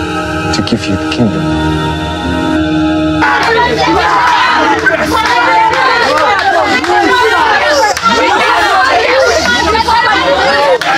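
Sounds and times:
babble of voices: 0:03.2 - 0:10.9.

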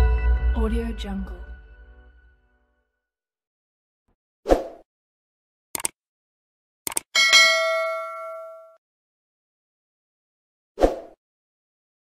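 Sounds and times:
mouse clicks: 0:05.8 - 0:06.0, 0:06.9 - 0:07.1
bell chime: 0:07.2 - 0:08.8.

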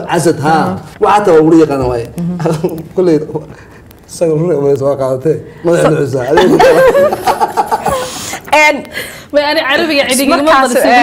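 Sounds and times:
chuckling laughter: 0:06.3 - 0:08.1
people talking: 0:09.4 - 0:11.0.

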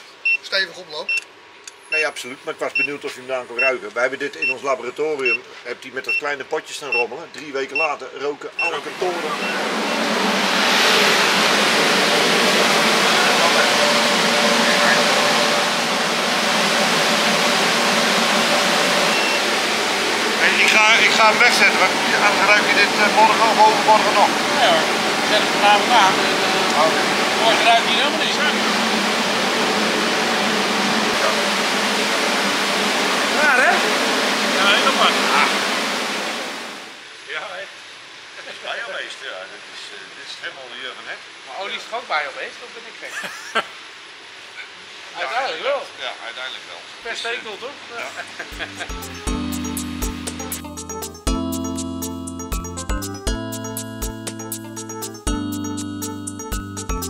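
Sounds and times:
man speaking: 0:01.9 - 0:09.8, 0:13.0 - 0:15.5, 0:20.4 - 0:28.9
fan rushing air: 0:08.6 - 0:40.0.

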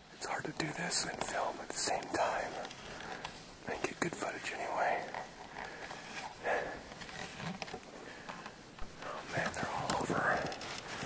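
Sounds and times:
faint breathy sound: 0:04.4 - 0:07.0
camera handling rustles: 0:05.1 - 0:11.0.

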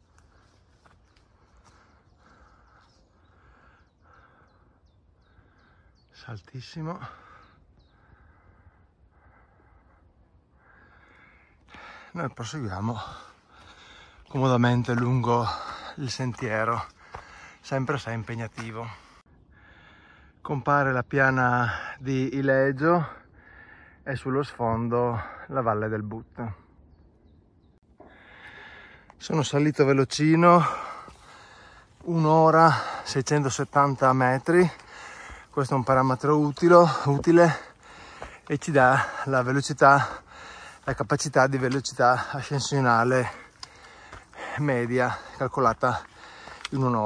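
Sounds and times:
heavy breathing: 0:00.1 - 0:06.1, 0:07.0 - 0:17.7, 0:18.5 - 0:20.4, 0:23.2 - 0:24.0, 0:28.0 - 0:29.2, 0:30.4 - 0:47.0
person breathing in: 0:34.8 - 0:35.6, 0:37.6 - 0:38.5, 0:40.1 - 0:40.8.

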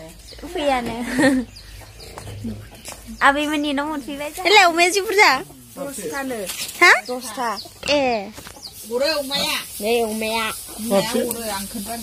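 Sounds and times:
chicken clucking: 0:00.0 - 0:12.0.

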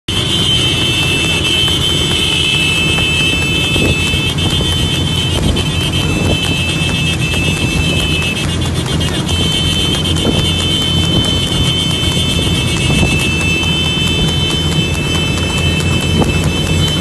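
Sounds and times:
continuous high-pitched tone: 0:00.1 - 0:17.0
motorcycle engines rumbling: 0:00.1 - 0:17.0.

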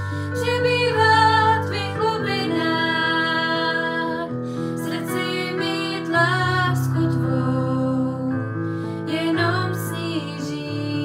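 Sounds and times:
gentle instrumental accompaniment: 0:00.0 - 0:11.0
woman singing: 0:00.4 - 0:08.4, 0:09.1 - 0:11.0.

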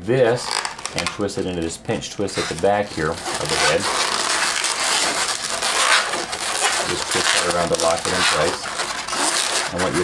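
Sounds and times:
balloons rubbing together: 0:00.0 - 0:10.0.

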